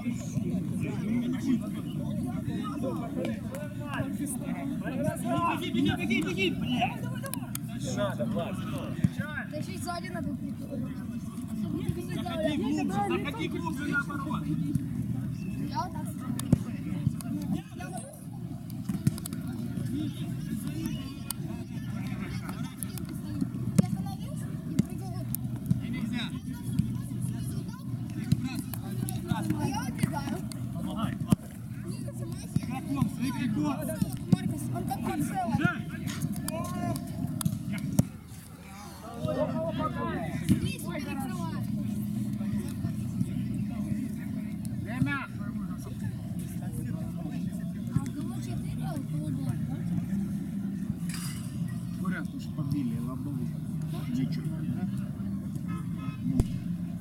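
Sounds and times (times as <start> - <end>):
ball being kicked: 56.4 - 56.8
steady low rumble: 56.4 - 57.0.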